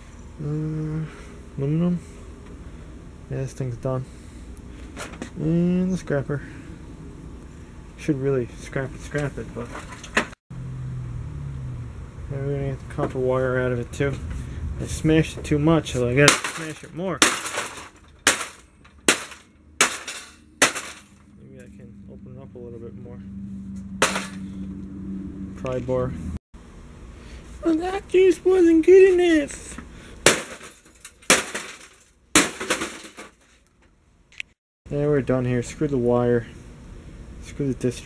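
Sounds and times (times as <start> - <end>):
sledgehammer striking sheet steel: 16.2 - 21.2, 24.0 - 24.5, 30.2 - 33.3.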